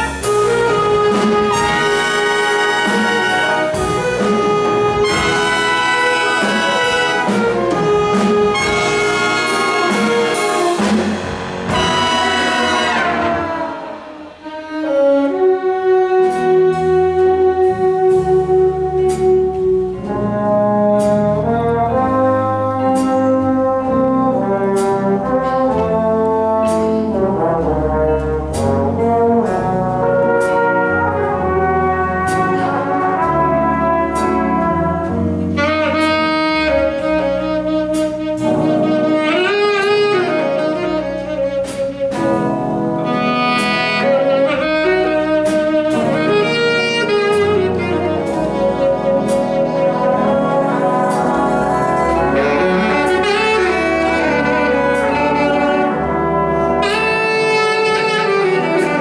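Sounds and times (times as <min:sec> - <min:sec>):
jazz big band: 0:00.0 - 0:59.0
tenor saxophone solo: 0:00.0 - 0:59.0.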